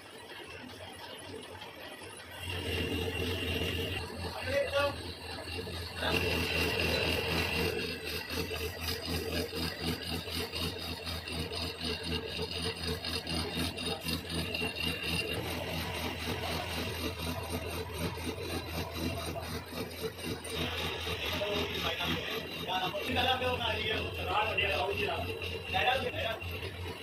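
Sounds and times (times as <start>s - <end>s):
lathe tool scraping metal: 0.0s - 27.0s
machine hum: 0.0s - 27.0s.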